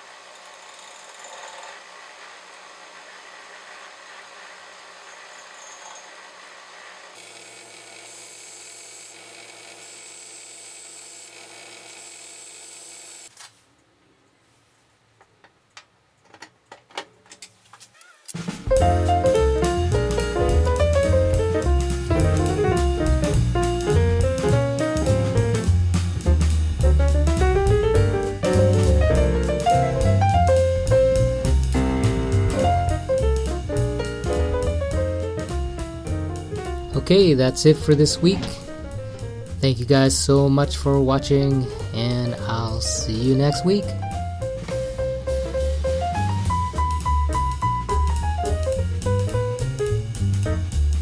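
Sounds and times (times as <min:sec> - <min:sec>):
bench grinder running: 0:00.0 - 0:13.3
piano music with drum beat: 0:18.4 - 0:39.6, 0:41.2 - 0:51.0.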